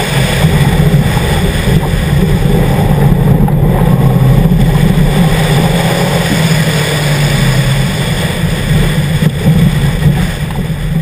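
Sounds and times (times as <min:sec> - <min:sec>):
car engine running under load: 0:00.0 - 0:11.0
road noise: 0:00.0 - 0:11.0
wind noise: 0:00.0 - 0:11.0.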